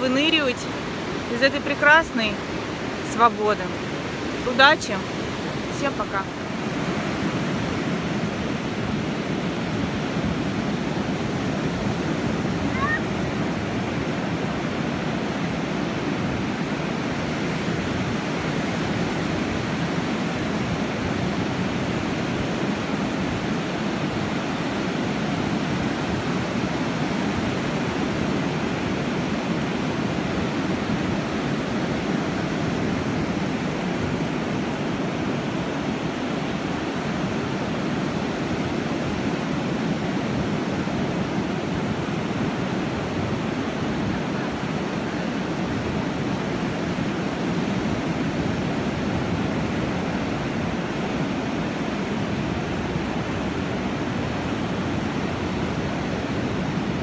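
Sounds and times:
surf breaking on sandy beach: 0.0s - 57.0s.

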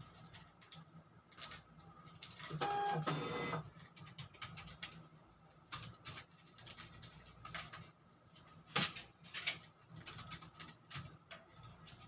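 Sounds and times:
small motorised machine whirring: 2.4s - 3.6s.

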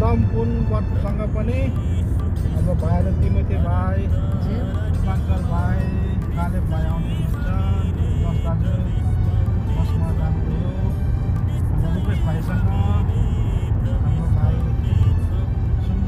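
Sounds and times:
car engine and tyres rumbling: 0.0s - 16.0s
music: 0.0s - 16.0s
voices: 0.0s - 16.0s.

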